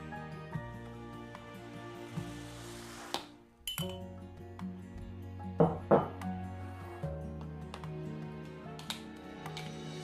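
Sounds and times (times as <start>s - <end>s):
background music: 0.0s - 10.0s
teaspoon clinking against glass: 3.6s - 4.1s.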